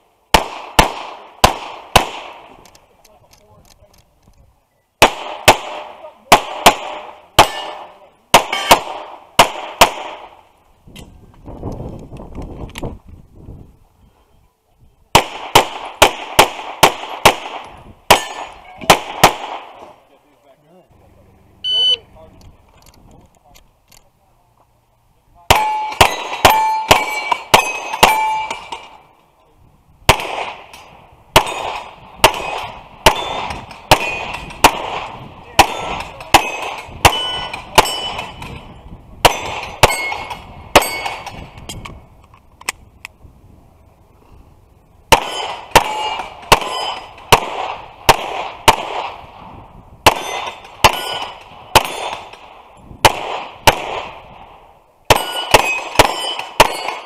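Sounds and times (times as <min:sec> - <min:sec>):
pistol shots: 0:00.3 - 0:02.6, 0:05.0 - 0:10.4, 0:15.1 - 0:19.9, 0:25.5 - 0:29.0, 0:30.1 - 0:41.6, 0:45.1 - 0:49.4, 0:50.0 - 0:57.0
steel target plate ringing: 0:25.6 - 0:28.8, 0:35.7 - 0:38.4, 0:39.3 - 0:41.2, 0:45.3 - 0:47.2, 0:50.2 - 0:52.2, 0:55.1 - 0:57.0.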